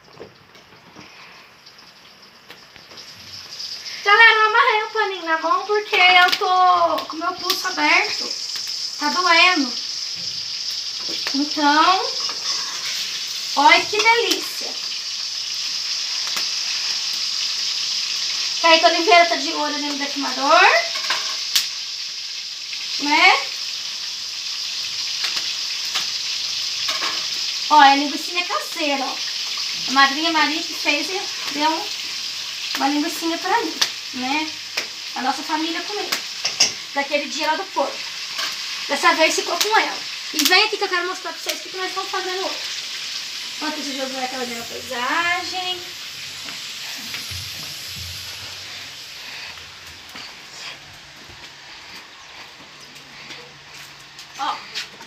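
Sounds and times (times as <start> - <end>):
sausage sizzling in a pan: 0.0 - 55.0.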